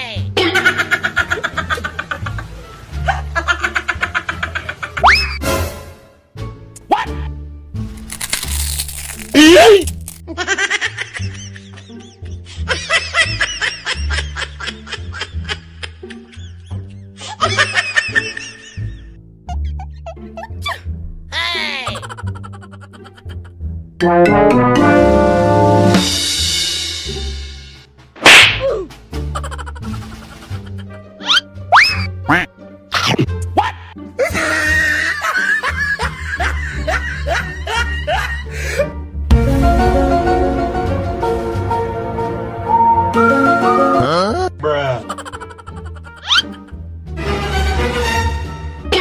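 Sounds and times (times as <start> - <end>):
background music: 0.0 - 49.0
snickering laughter: 0.4 - 5.2, 10.3 - 20.6, 21.9 - 23.5, 29.3 - 30.9, 34.2 - 38.5, 44.0 - 46.8
high-pitched giggling laughter: 21.8 - 23.5, 29.3 - 30.9, 44.0 - 46.8
background music with bass line: 23.4 - 34.5, 35.5 - 45.1.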